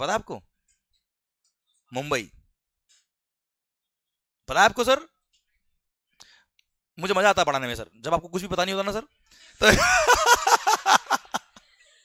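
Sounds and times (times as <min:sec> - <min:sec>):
short breath: 0:06.2 - 0:06.6.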